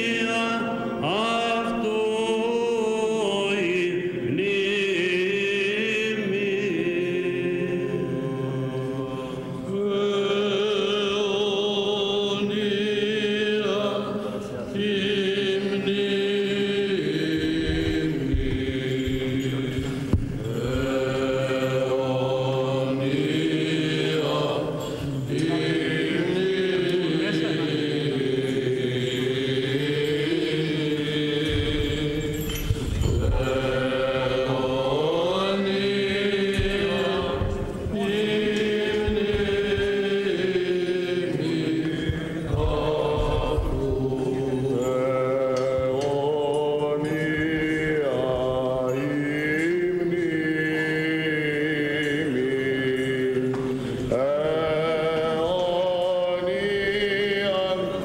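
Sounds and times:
held vocal drone: 0.0s - 58.0s
men chanting melismatic melody: 0.0s - 58.0s.

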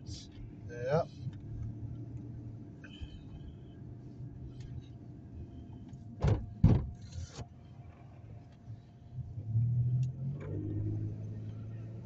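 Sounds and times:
car engine and road hum: 0.0s - 12.0s.

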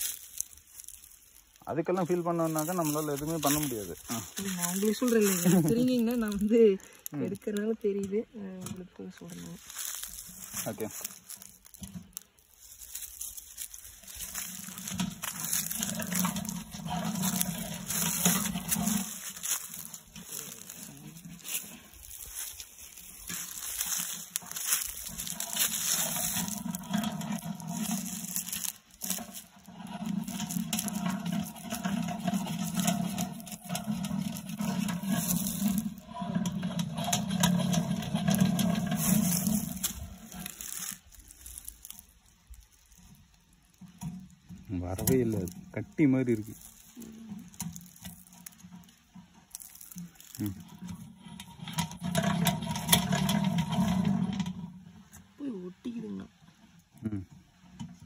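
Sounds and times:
honey extractor humming: 0.0s - 58.0s.

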